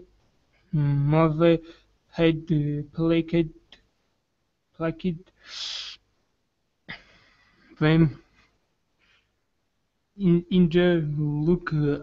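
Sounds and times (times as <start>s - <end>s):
person speaking: 0.0s - 3.9s, 4.7s - 6.1s, 7.7s - 8.4s, 10.2s - 12.0s.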